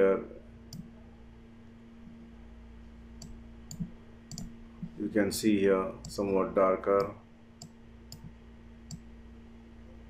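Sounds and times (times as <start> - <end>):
faint steady hum: 0.0 - 10.0
computer mouse clicking: 3.2 - 5.0, 7.0 - 9.0.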